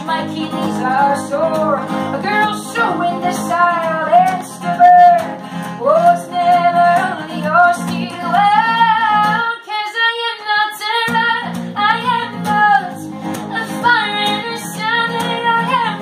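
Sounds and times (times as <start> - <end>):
acoustic guitar playing: 0.0 - 9.6, 10.2 - 16.0
woman singing: 0.0 - 16.0.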